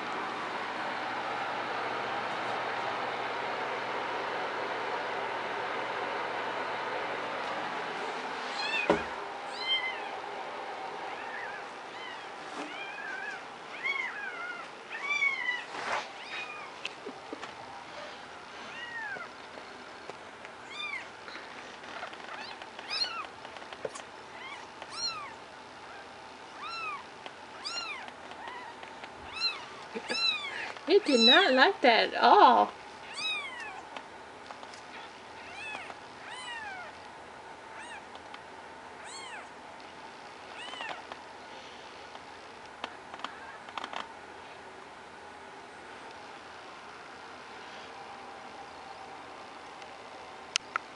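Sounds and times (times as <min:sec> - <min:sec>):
kitten mewing: 0:26.6 - 0:30.7, 0:33.0 - 0:33.9.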